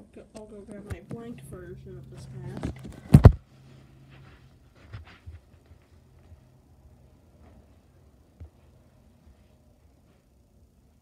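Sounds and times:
camera handling thuds: 2.5s - 3.4s.

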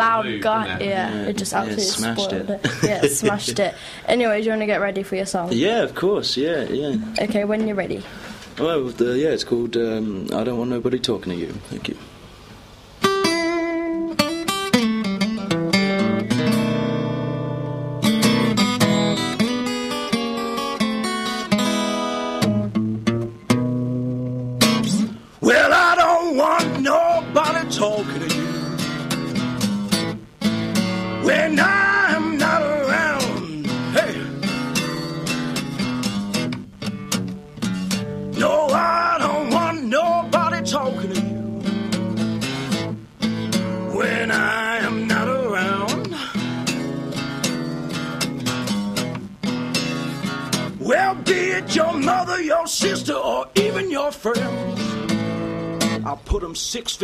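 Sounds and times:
acoustic guitar strumming blues: 0.0s - 5.5s, 12.6s - 57.0s
man singing: 0.2s - 2.3s, 25.4s - 28.7s, 31.2s - 34.7s, 38.3s - 41.5s, 43.8s - 46.3s, 50.8s - 54.9s.

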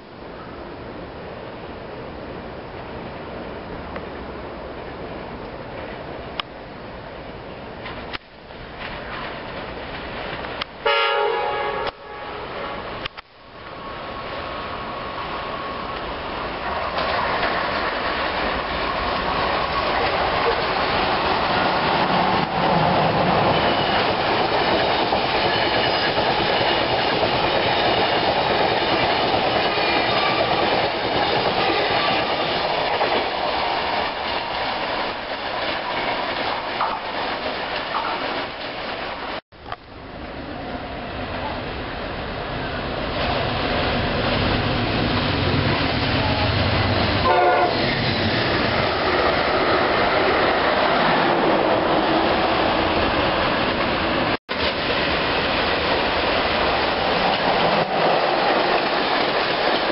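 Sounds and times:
train wheels rumbling on rail: 7.4s - 59.9s
train horn blast: 10.8s - 12.9s, 47.2s - 47.8s.

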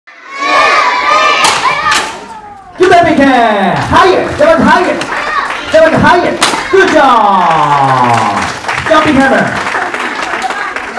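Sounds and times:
children shouting: 0.1s - 2.8s
sharp smacks: 6.4s - 6.7s.

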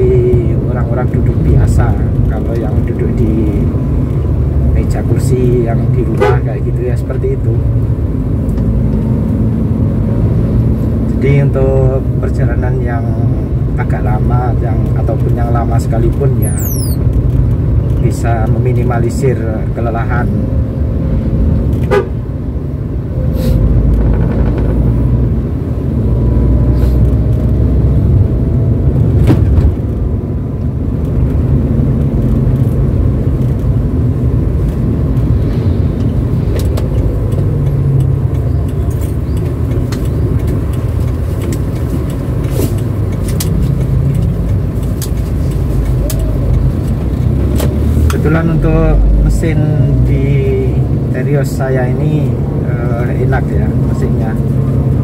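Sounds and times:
car engine and road rumble: 0.0s - 55.0s.

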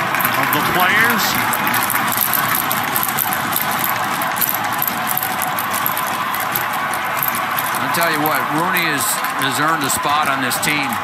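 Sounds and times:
faint rattling clicks: 1.4s - 8.6s.

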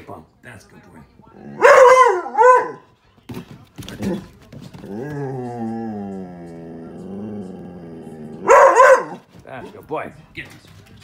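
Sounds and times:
dog barking: 1.6s - 2.8s, 8.4s - 9.2s
dog moaning call: 4.9s - 8.5s.

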